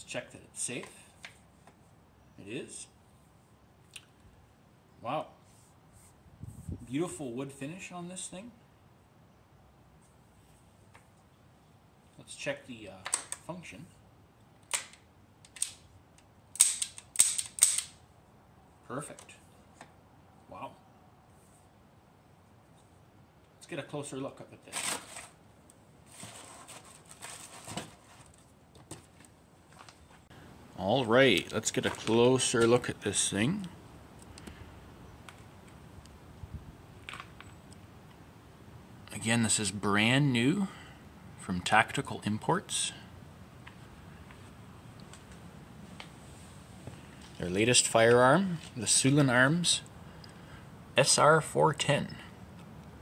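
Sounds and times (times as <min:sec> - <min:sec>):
rustle near microphone: 0:05.3 - 0:08.4, 0:24.3 - 0:37.7, 0:43.0 - 0:52.0
shotgun action metallic clicks: 0:14.6 - 0:18.0.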